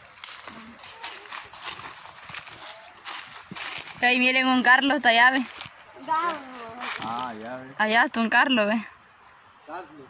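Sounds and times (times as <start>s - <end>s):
footsteps crunching through dry leaves: 0.0s - 7.6s.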